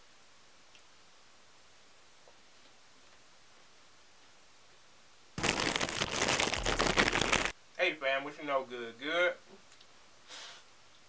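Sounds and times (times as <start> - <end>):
foil packet crinkling and tearing: 5.4 - 7.6.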